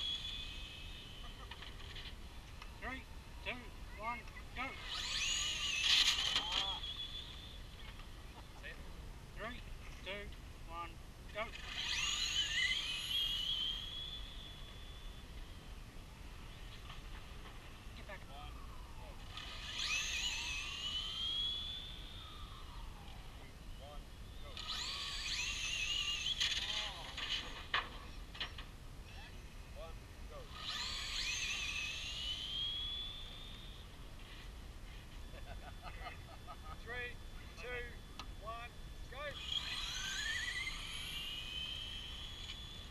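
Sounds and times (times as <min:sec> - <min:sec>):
electric motors whining: 0:00.0 - 0:42.9
voices: 0:01.2 - 0:13.1, 0:35.2 - 0:40.8.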